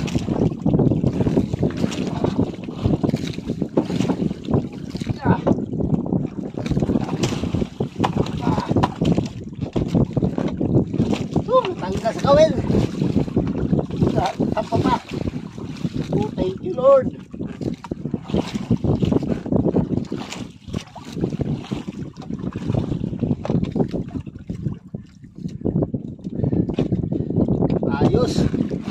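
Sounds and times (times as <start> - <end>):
sea water splashing against hull: 0.0 - 28.9
wind buffeting microphone: 0.0 - 28.9.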